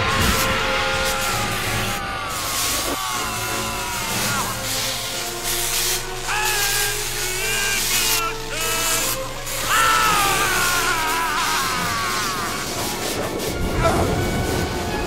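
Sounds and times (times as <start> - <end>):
electric crackle and hiss: 0.0 - 15.0
orchestral score: 0.0 - 15.0
man screaming: 0.2 - 13.1.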